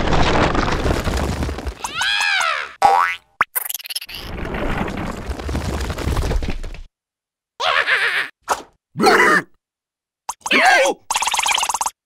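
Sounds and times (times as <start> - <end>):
rumbling noise: 4.3 - 6.9
cartoon character's short cry: 7.6 - 8.3.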